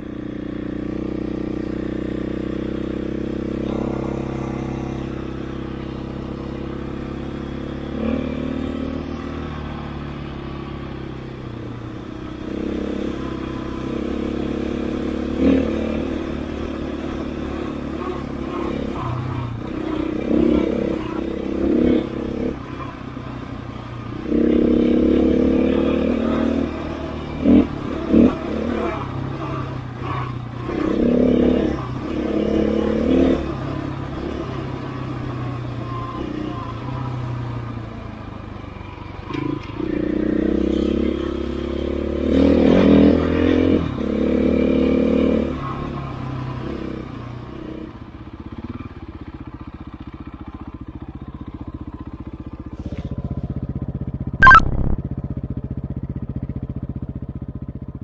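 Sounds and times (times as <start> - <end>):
motorcycle engine revving: 0.0 - 58.0
sharp loud bursts: 54.4 - 55.0.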